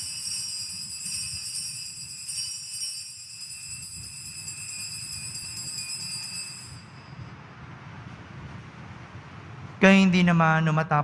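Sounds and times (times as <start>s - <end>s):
altar bells ringing: 0.0s - 7.4s.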